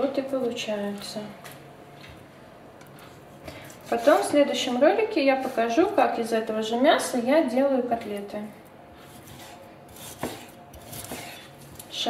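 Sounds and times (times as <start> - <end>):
knife cutting meat: 3.6 - 4.4, 9.0 - 11.9.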